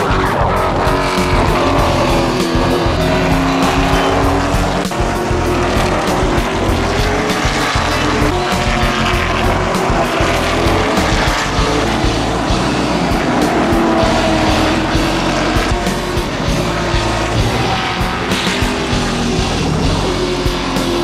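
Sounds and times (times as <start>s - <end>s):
background music with beat: 0.0s - 21.0s
race car engines passing: 0.0s - 21.0s.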